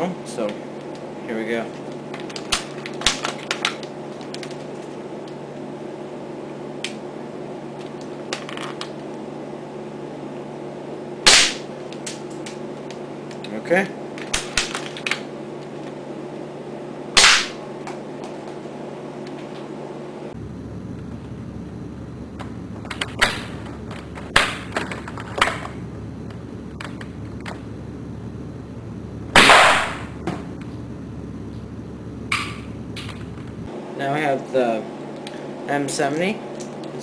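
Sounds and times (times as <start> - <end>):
steady low hum: 0.0 - 37.0
airsoft rifle shots: 11.3 - 11.7, 17.2 - 17.6, 29.4 - 30.1.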